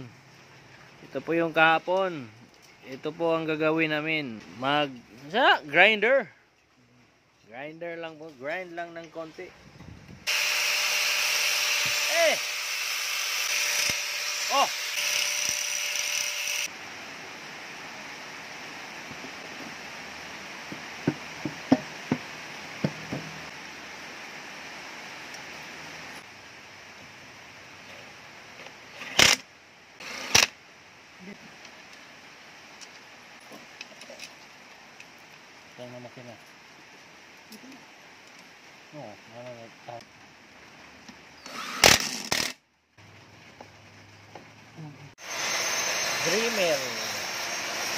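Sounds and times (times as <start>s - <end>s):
angle grinder grinding metal: 10.3s - 16.7s, 45.2s - 47.9s.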